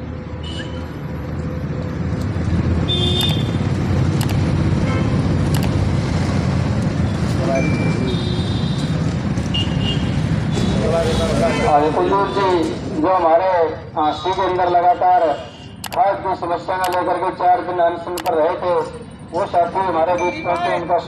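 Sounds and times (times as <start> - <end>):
low outdoor traffic rumble: 0.0 - 21.0.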